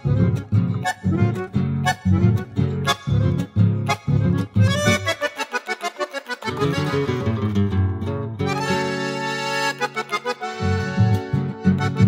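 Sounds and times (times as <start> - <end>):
accordion chords: 0.0 - 7.6, 8.4 - 12.0
plucked guitar accompaniment: 0.0 - 12.0.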